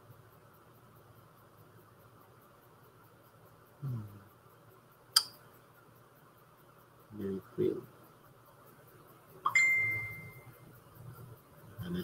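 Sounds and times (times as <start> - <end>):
computer alert chime: 9.5 - 10.5.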